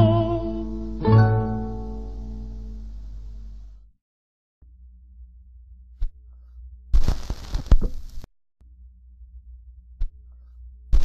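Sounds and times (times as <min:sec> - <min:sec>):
low steady hum with pulses: 0:00.0 - 0:03.9, 0:04.6 - 0:11.0.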